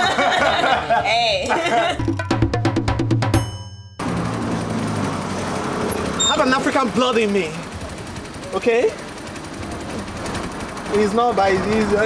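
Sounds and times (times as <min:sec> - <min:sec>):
street noise: 0:03.4 - 0:12.0
small engine rattling: 0:04.0 - 0:12.0.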